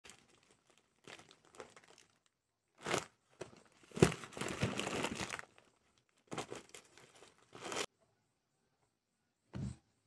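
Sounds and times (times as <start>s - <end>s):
plastic packaging crinkling: 0.0s - 7.9s.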